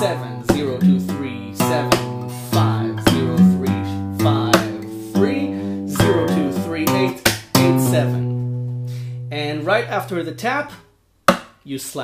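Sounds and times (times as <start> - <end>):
acoustic guitar fingerstyle: 0.0 - 10.6
hand slaps on guitar strings: 1.9 - 2.3, 7.2 - 8.8.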